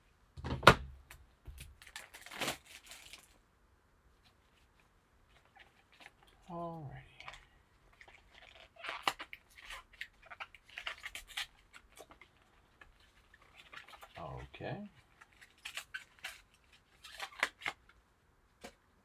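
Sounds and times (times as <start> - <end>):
cardboard packaging tearing: 1.8 - 3.4, 8.0 - 17.9.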